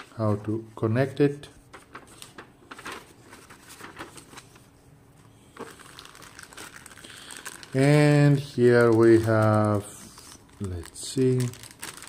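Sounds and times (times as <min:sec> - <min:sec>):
paper rustling: 0:00.0 - 0:12.0
plastic wrapper crinkling: 0:01.7 - 0:04.7, 0:05.5 - 0:12.0.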